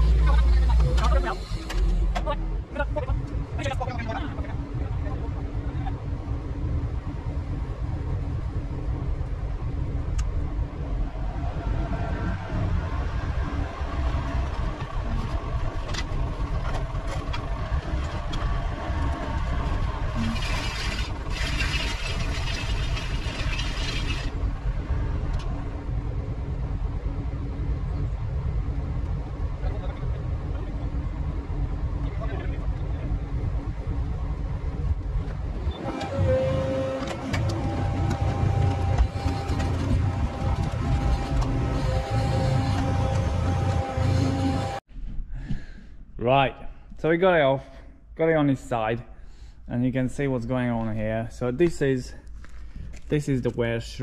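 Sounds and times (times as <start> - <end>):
excavator engine under load: 8.4 - 26.3, 35.0 - 44.8.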